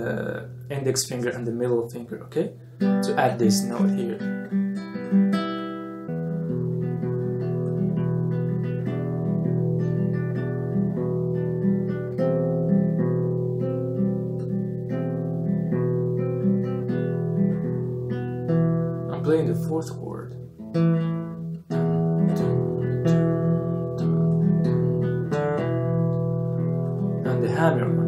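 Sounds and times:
fingerpicked classical guitar: 0:00.0 - 0:28.0.

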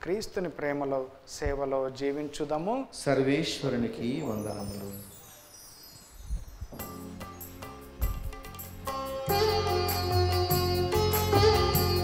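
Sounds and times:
high ringing chimes: 0:04.0 - 0:09.1
instrumental music: 0:04.3 - 0:12.0.

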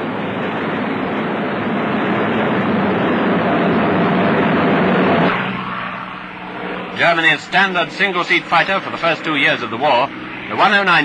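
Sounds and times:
piston aircraft engine drone: 0:00.0 - 0:11.0.

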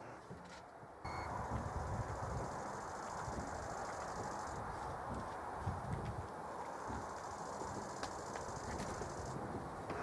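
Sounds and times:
outdoor background noise: 0:00.0 - 0:10.0
short high beep: 0:01.1 - 0:01.4.

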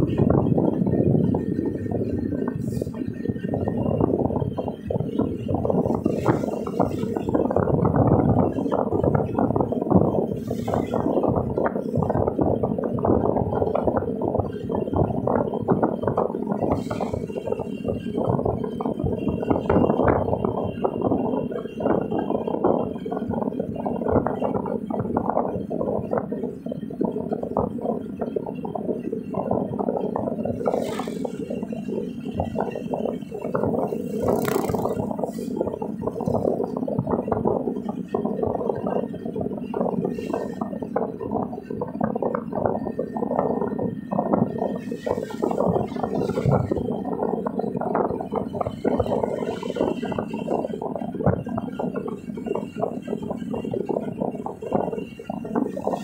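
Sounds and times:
road noise inside a moving car: 0:00.0 - 0:56.0.

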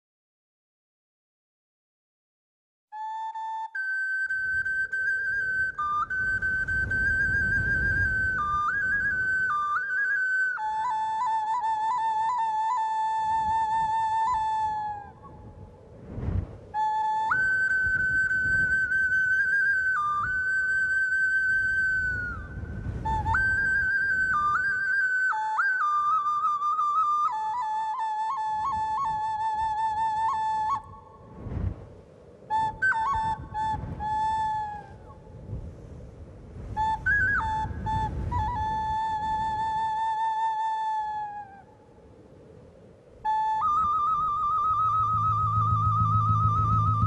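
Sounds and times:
solo flute melody: 0:02.9 - 0:47.0.

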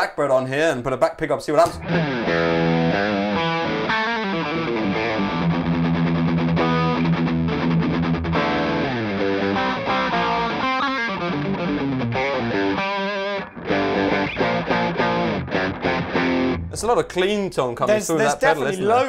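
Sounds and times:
clean electric guitar: 0:01.7 - 0:16.8.

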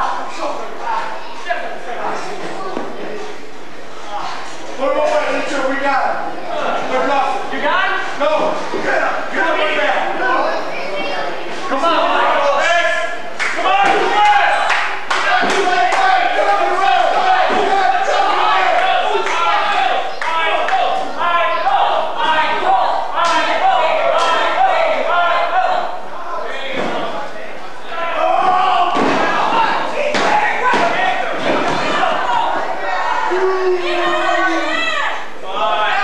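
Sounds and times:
indistinct shouting voices: 0:04.2 - 0:36.0.

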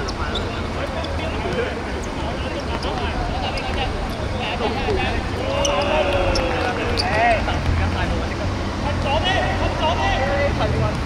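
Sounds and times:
players calling out: 0:00.0 - 0:10.8.

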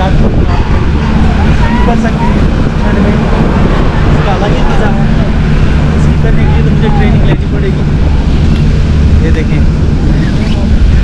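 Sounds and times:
people chatting: 0:00.0 - 0:07.9, 0:08.5 - 0:11.0
steady low rumble: 0:00.0 - 0:11.0.

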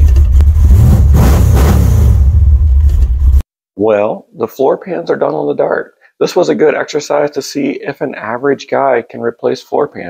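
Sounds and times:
car engine revving inside cabin: 0:00.4 - 0:02.7.

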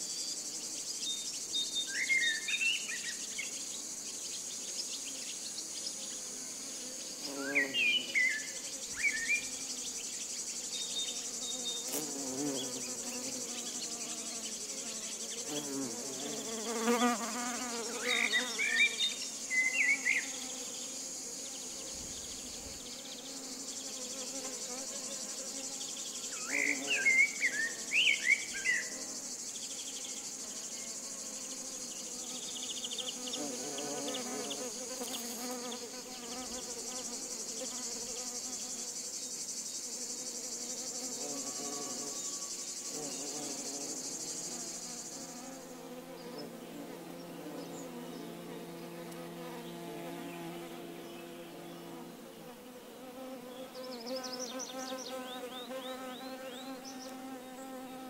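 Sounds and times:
bees buzzing: 0:05.7 - 0:28.0, 0:28.9 - 0:39.0, 0:39.9 - 0:58.0
high-pitched insect drone: 0:07.3 - 0:45.7.

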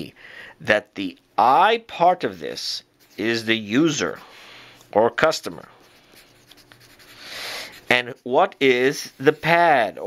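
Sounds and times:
pencil scratching on paper: 0:05.8 - 0:09.9.

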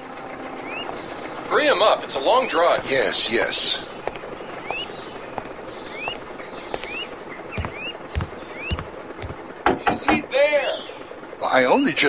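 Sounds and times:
bird chirping: 0:00.1 - 0:11.2
soft low thumps: 0:04.0 - 0:09.5.

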